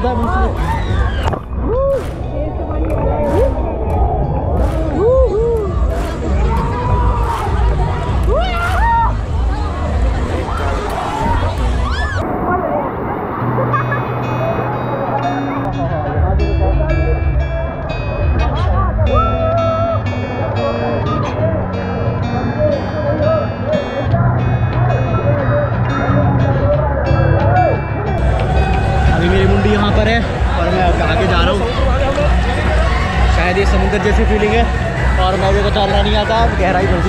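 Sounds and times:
rhythmic background music: 0.0s - 12.2s, 15.6s - 37.0s
babble of many voices: 0.0s - 37.0s.

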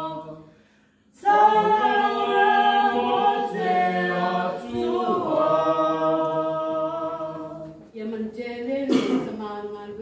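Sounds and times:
group singing unaccompanied: 0.0s - 10.0s.

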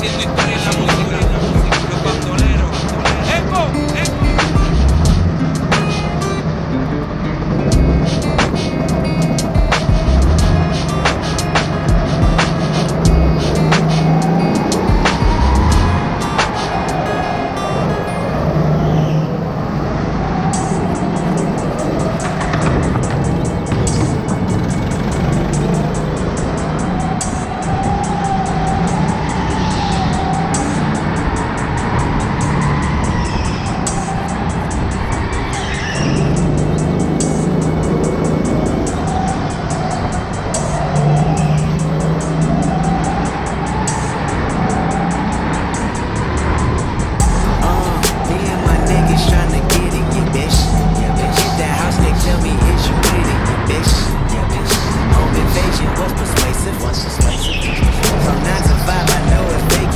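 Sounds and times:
background music: 0.0s - 59.9s
go-kart motor running: 0.0s - 59.9s.

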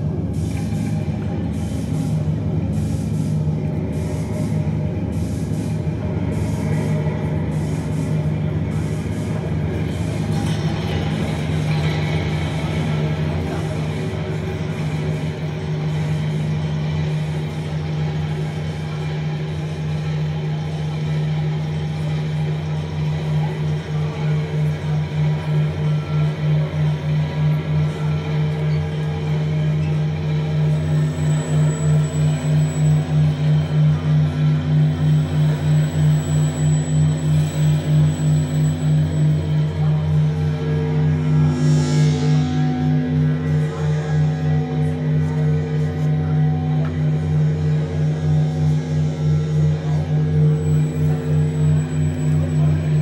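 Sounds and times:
low synthesizer drone: 0.0s - 53.0s
higher held synth tone: 30.0s - 53.0s.

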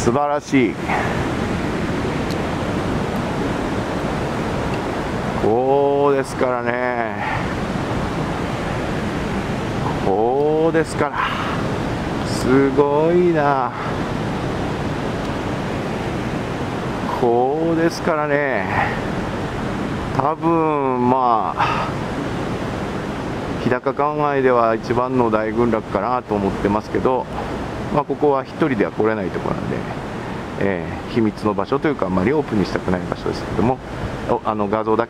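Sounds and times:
heavy surf roaring: 0.0s - 35.0s.

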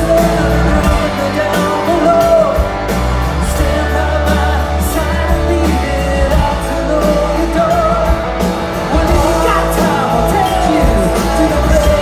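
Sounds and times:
man singing: 0.0s - 2.8s, 3.4s - 12.0s
live rock band playing: 0.0s - 12.0s.

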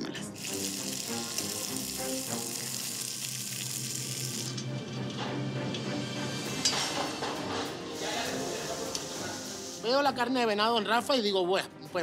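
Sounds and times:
background music: 0.0s - 12.0s
patties sizzling in oil: 0.3s - 4.7s.

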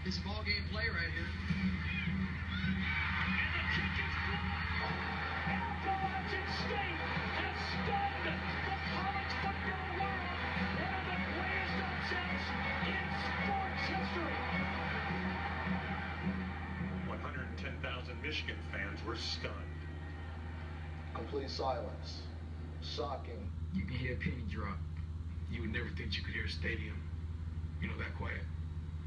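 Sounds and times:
background music from tv: 0.0s - 22.9s
steady low hum: 0.0s - 29.0s
indistinct voices: 1.3s - 24.4s.

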